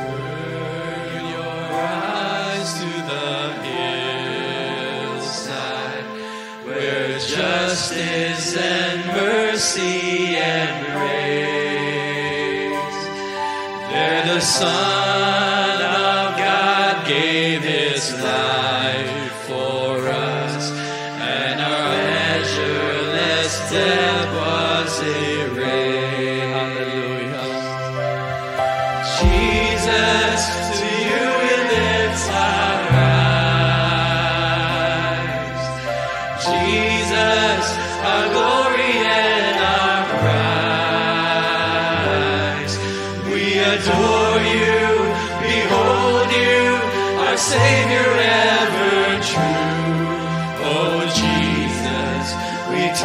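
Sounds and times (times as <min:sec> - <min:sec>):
men singing worship song: 0:00.0 - 0:53.0
long held low notes: 0:28.8 - 0:35.8.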